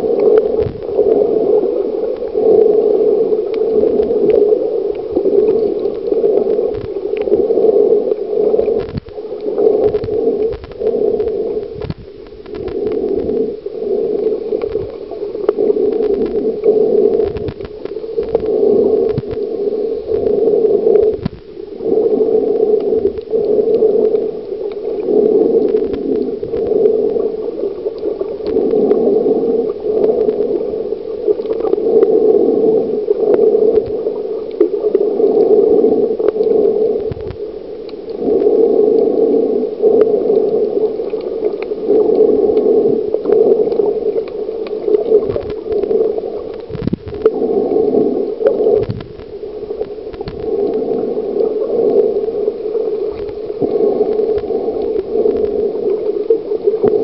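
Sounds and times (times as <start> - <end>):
underwater rushing: 0.0 - 57.0.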